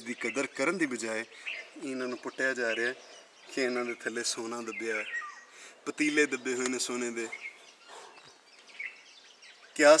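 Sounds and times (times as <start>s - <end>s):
bird chirps: 0.0s - 10.0s.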